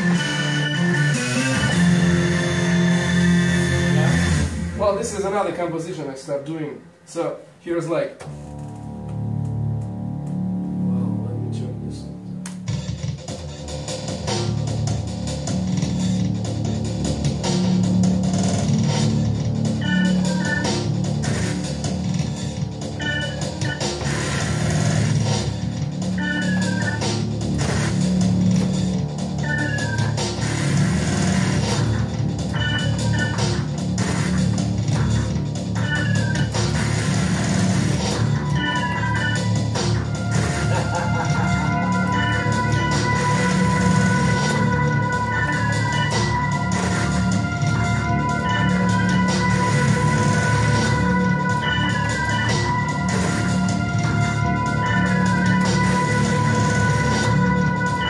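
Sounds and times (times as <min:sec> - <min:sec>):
pulsing synth bass: 0:00.0 - 0:04.9, 0:08.3 - 0:58.0
organ-like synth music: 0:00.0 - 0:58.0.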